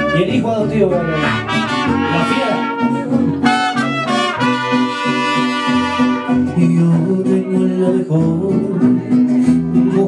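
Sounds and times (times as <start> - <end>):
mariachi trumpets playing a melody: 0.0 - 6.6
steady rhythm accompaniment: 1.0 - 6.3.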